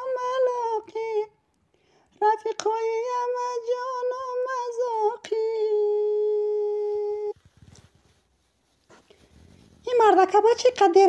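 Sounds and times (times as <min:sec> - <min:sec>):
faint rustles and knocks: 0:07.3 - 0:11.0
person speaking: 0:09.8 - 0:11.0.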